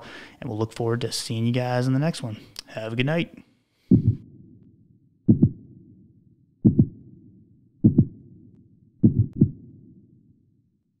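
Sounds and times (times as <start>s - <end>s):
heartbeat double thumps: 3.9s - 4.6s, 5.2s - 10.0s
low rumble: 3.9s - 10.2s.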